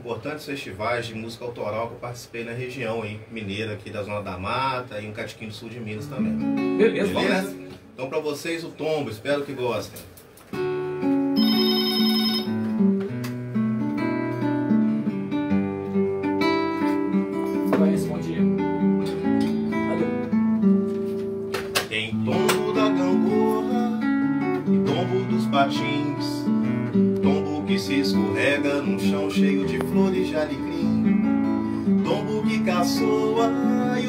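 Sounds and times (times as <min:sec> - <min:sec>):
acoustic guitar playing: 0:05.9 - 0:08.0, 0:10.2 - 0:34.0
high electronic tone: 0:11.4 - 0:12.7.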